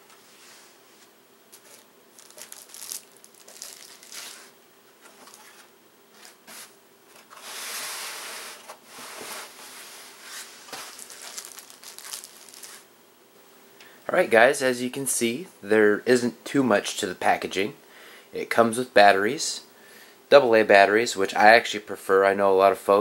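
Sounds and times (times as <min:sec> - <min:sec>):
packaging rustling and crinkling: 0:01.5 - 0:08.2, 0:10.3 - 0:12.9.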